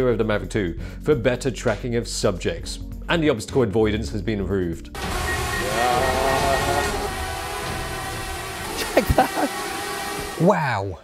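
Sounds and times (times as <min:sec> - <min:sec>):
drone propellers whirring: 0:05.0 - 0:10.4.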